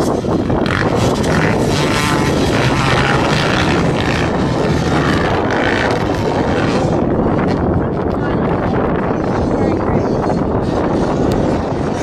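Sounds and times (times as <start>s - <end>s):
motocross bikes racing: 0.0s - 12.0s.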